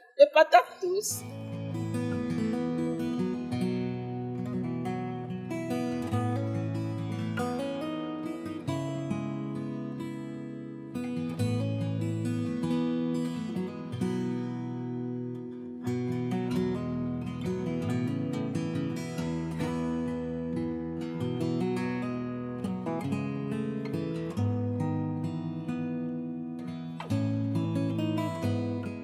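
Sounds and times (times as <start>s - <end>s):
acoustic guitar playing chords: 0.0s - 29.0s.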